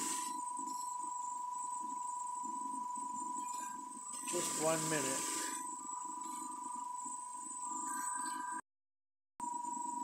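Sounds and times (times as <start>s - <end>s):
motor hum: 0.0s - 7.9s
high-pitched electrical whine: 0.0s - 8.6s.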